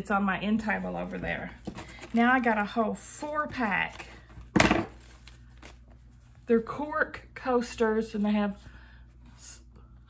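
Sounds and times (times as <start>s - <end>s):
packaging rustling: 3.9s - 6.3s.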